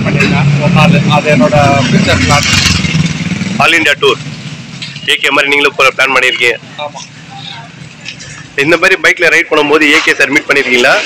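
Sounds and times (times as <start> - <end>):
man speaking: 5.0 - 7.2, 8.5 - 11.0.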